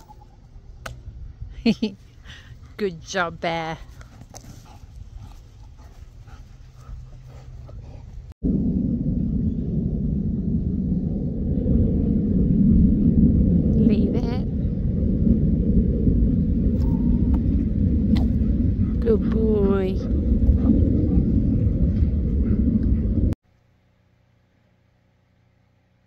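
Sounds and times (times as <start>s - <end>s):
wind buffeting microphone: 0.0s - 23.4s.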